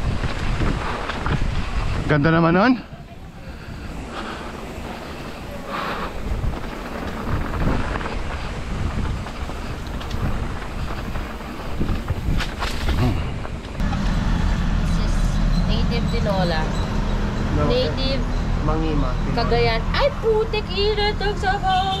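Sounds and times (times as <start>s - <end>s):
wind buffeting microphone: 0.0s - 22.0s
tyres rolling over gravel: 3.5s - 14.2s.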